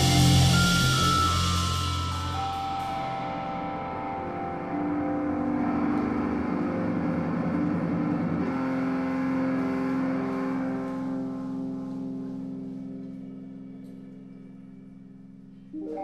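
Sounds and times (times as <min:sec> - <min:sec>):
band playing sustained tones: 0:00.0 - 0:16.0.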